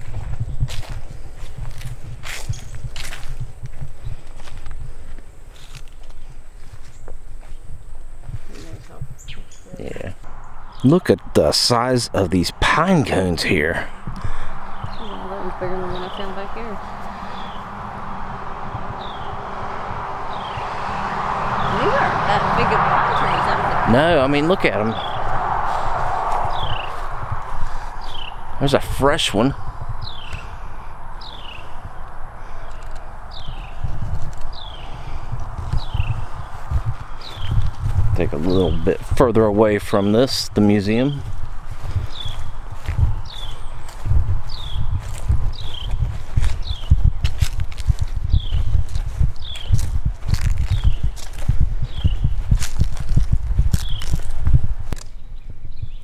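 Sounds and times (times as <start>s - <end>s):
footsteps thudding on microphone: 0.0s - 9.4s, 33.4s - 39.2s, 41.2s - 55.0s
low rumble: 10.1s - 55.8s.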